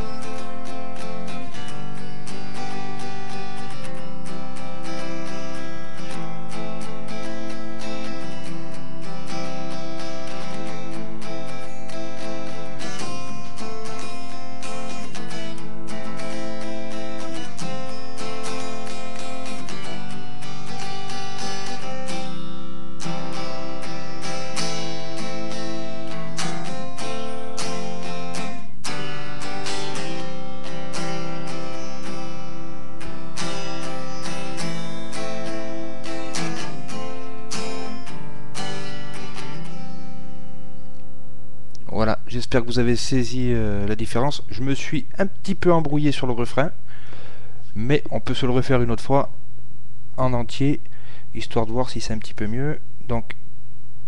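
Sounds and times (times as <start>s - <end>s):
guitar strumming: 0.0s - 49.3s, 50.3s - 52.0s.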